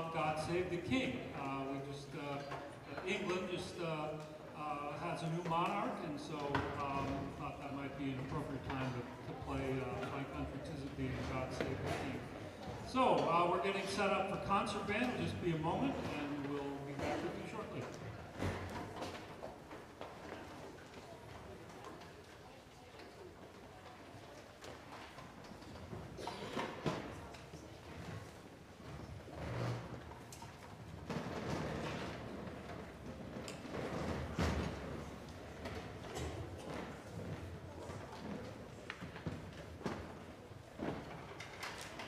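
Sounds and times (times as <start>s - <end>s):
murmur of voices: 0.0s - 42.0s.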